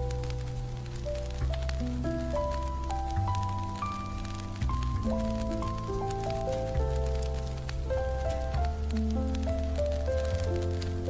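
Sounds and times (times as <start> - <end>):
deep bass notes: 0.0 - 11.0
jazz piano: 0.0 - 11.0
scattered small ticks and patter: 0.0 - 11.0.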